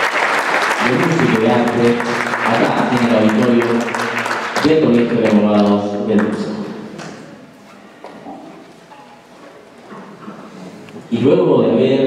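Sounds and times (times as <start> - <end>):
people shuffling: 7.0 - 11.2.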